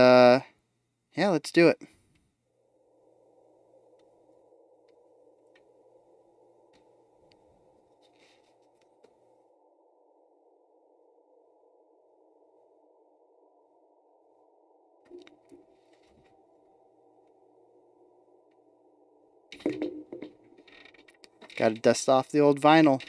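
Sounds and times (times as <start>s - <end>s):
soft clicks and rustles: 6.7s - 9.2s, 15.1s - 16.4s, 19.5s - 22.0s.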